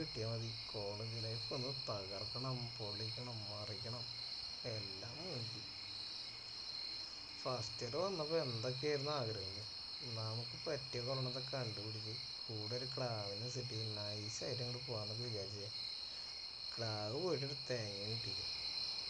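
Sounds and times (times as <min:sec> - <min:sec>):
man talking: 0:00.0 - 0:04.1, 0:04.7 - 0:05.6, 0:07.4 - 0:15.7, 0:16.8 - 0:18.5
insects chirring: 0:00.0 - 0:19.0.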